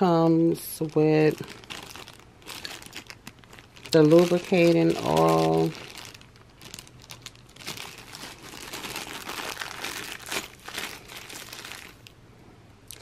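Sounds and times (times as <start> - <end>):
plastic bag crinkling: 0.0 - 12.2.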